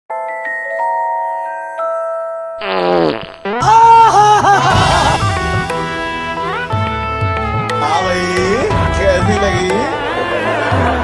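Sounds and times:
fart sound effect: 2.6s - 3.6s
music with wavering melody: 3.5s - 11.0s.

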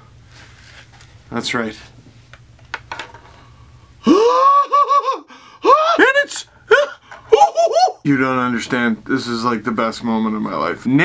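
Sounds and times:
man squealing in delight: 4.0s - 8.1s.

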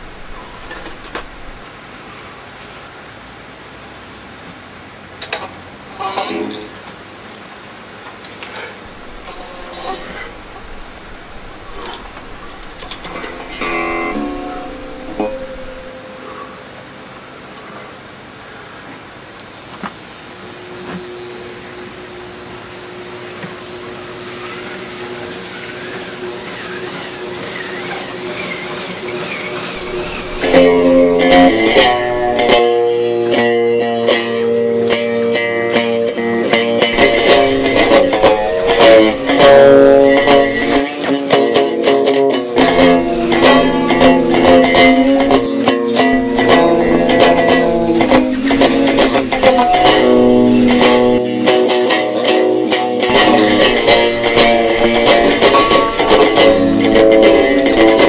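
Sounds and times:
amplifier hum and hiss: 0.0s - 58.0s
electric guitar notes and chords: 8.8s - 17.1s, 21.7s - 58.0s.

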